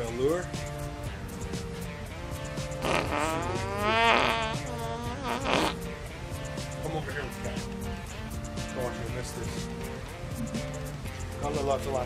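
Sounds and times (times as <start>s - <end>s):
guitar music: 0.0s - 12.0s
fart: 2.8s - 5.9s.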